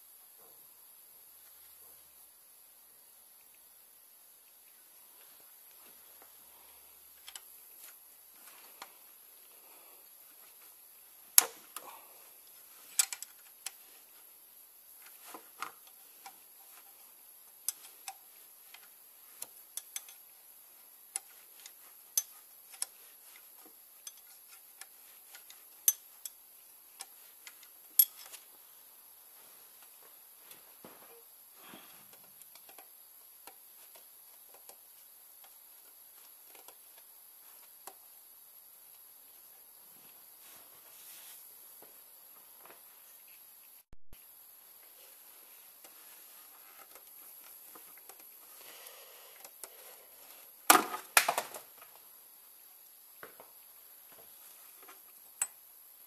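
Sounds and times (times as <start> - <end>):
spanner and metal parts clinking: 19.4 - 20.3, 24.0 - 26.4, 27.0 - 28.4.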